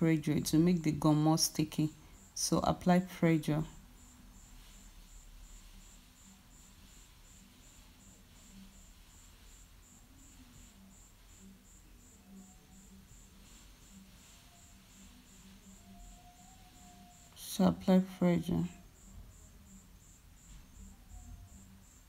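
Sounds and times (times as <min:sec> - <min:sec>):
faint high-pitched chirp: 0:03.5 - 0:22.0.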